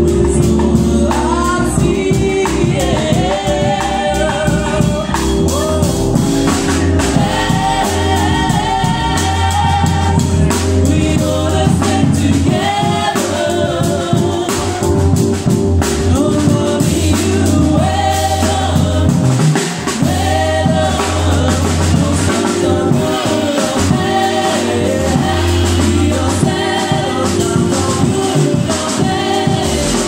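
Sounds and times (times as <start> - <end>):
drum kit played with sticks: 0.0 - 30.0
keyboard: 0.0 - 30.0
low bass line: 0.0 - 30.0.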